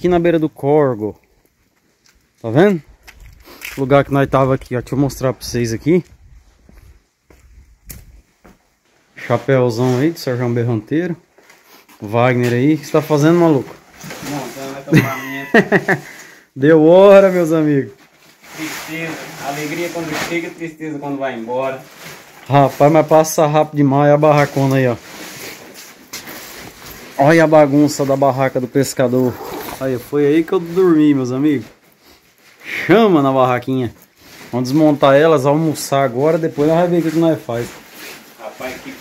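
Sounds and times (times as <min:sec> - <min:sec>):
quiet footsteps: 0:01.1 - 0:09.2.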